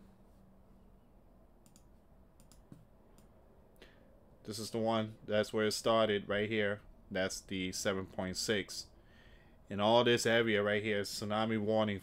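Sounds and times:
faint clicks: 0:01.6 - 0:04.0.

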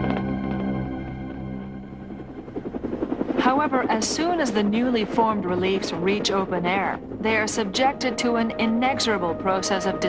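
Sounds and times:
soft ambient music: 0:00.0 - 0:10.0
helicopter rotor chopping: 0:01.4 - 0:09.9.

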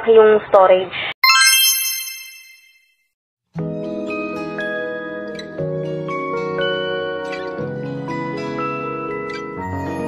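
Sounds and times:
bright chime: 0:01.2 - 0:02.8.

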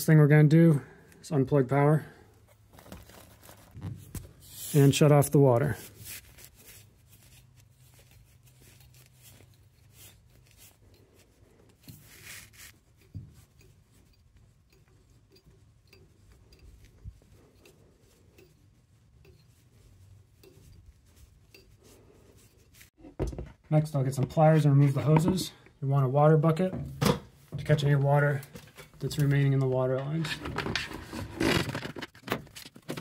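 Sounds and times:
soft rustle: 0:02.2 - 0:23.0
hand turning valve handles: 0:08.0 - 0:23.0.

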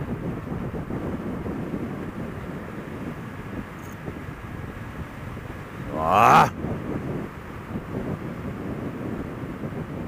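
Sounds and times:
wind rumble on microphone: 0:00.0 - 0:10.0.

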